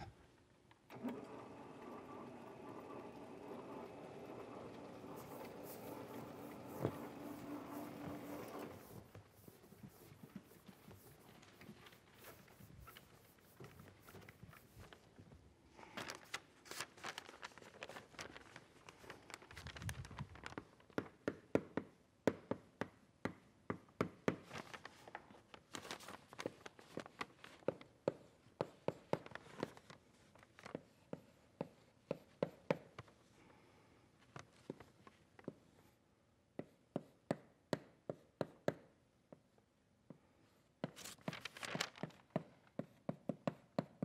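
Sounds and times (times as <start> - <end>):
sliding panels mechanical hum: 0.9 - 9.2
chalk tapping and scratching on blackboard: 5.1 - 15.0, 27.6 - 29.8, 30.7 - 33.1, 36.6 - 38.9, 42.3 - 44.0.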